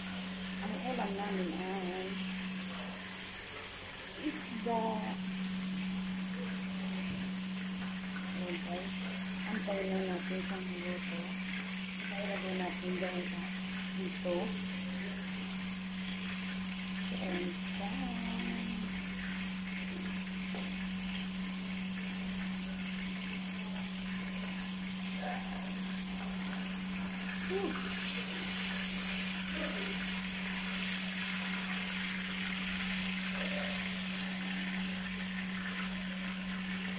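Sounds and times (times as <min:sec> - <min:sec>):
fish sizzling in hot oil: 0:00.0 - 0:36.9
low hum: 0:00.0 - 0:36.9.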